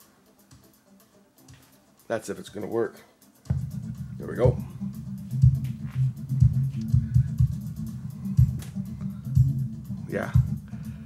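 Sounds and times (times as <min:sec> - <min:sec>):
kick-drum beats: 0:03.4 - 0:11.0
deep bass line: 0:03.5 - 0:11.0.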